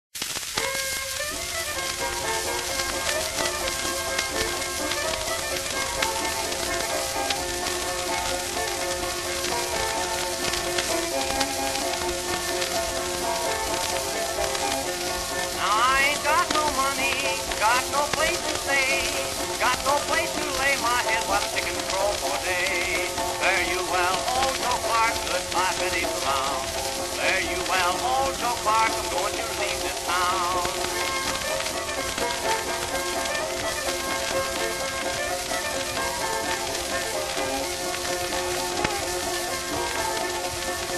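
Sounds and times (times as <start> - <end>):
record surface crackle and hiss: 0.1 - 40.9
old-time string band playing: 0.6 - 40.9.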